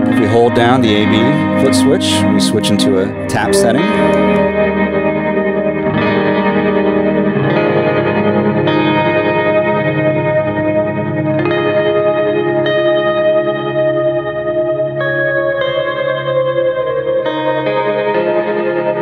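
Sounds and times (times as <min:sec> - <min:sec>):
electric guitar chords with reverb: 0:00.0 - 0:19.0.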